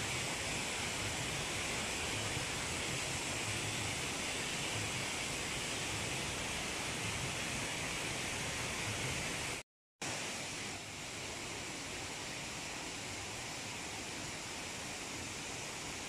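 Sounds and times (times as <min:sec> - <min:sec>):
steady outdoor hiss: 0:00.0 - 0:16.0.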